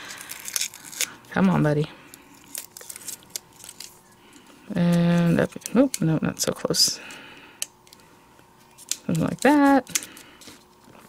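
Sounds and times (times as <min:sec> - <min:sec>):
paper crinkling: 0:00.0 - 0:01.2, 0:02.1 - 0:06.0.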